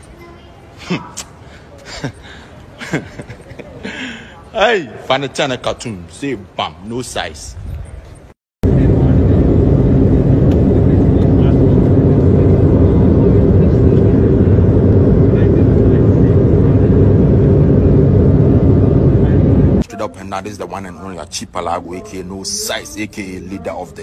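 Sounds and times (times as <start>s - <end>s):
airliner drone in flight: 8.6s - 21.2s.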